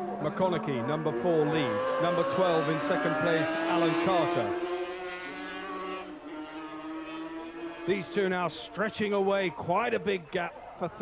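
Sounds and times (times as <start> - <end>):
racing motorcycle engines revving high: 0.0 - 11.0.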